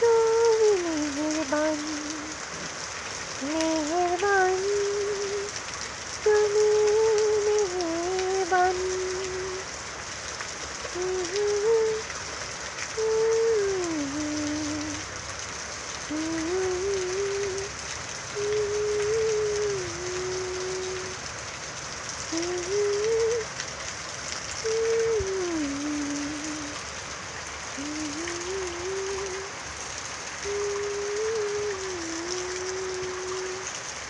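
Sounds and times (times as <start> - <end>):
person humming: 0.0 - 2.8, 3.4 - 5.5, 6.3 - 9.6, 10.9 - 12.0, 13.0 - 15.0, 16.1 - 17.7, 18.3 - 21.2, 22.3 - 23.5, 24.6 - 26.8, 27.8 - 29.6, 30.4 - 33.7
rain on foliage: 0.0 - 34.0.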